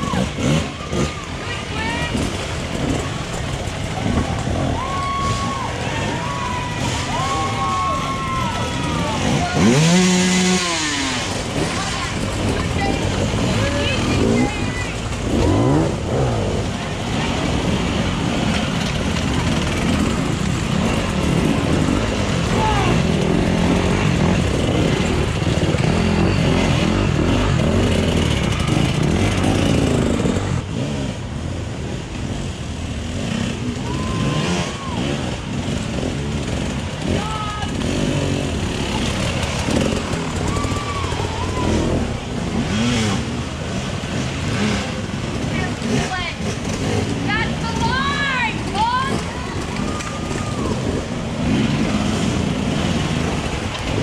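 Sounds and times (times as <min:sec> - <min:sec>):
dirt bike engines revving: 0:00.0 - 0:54.0
spectators calling out: 0:03.8 - 0:16.3, 0:38.7 - 0:42.4.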